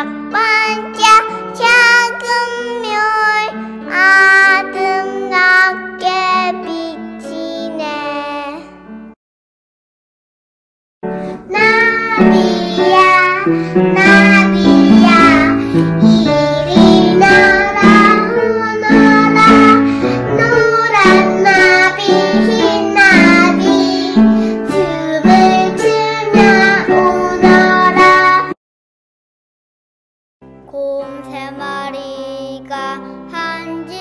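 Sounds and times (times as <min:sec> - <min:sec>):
child singing: 0:00.0 - 0:08.7, 0:11.5 - 0:28.6, 0:30.7 - 0:34.0.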